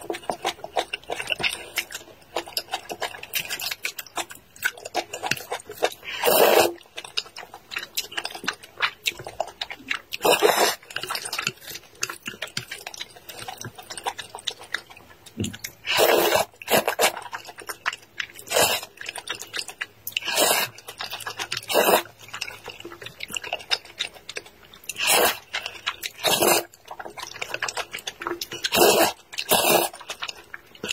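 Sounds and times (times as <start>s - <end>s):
wet chewing or slurping: 0.0s - 30.9s
loud noodle slurps: 6.1s - 6.8s, 10.2s - 10.8s, 15.8s - 17.2s, 18.5s - 18.9s, 20.2s - 20.8s, 21.6s - 22.1s, 25.0s - 25.5s, 26.2s - 26.7s, 28.6s - 30.0s.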